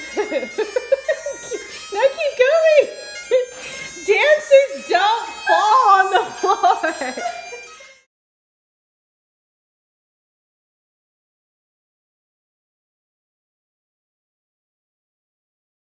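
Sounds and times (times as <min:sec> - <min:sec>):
people laughing heartily: 0:00.0 - 0:01.9, 0:05.9 - 0:07.7
bagpipe music: 0:00.0 - 0:08.1.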